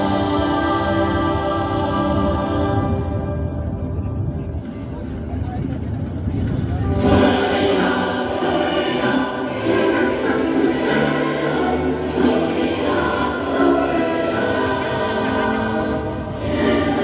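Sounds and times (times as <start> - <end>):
choir singing over loudspeakers: 0.0 - 4.0, 6.9 - 17.0.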